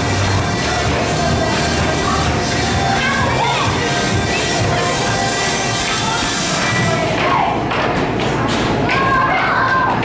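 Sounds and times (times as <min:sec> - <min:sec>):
loud background music: 0:00.0 - 0:10.0
beach balls thumping: 0:06.7 - 0:10.0.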